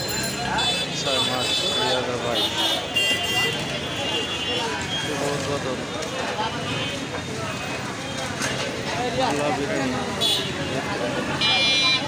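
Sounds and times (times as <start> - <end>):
many voices talking: 0.0 - 12.0
traffic noise: 0.0 - 12.0.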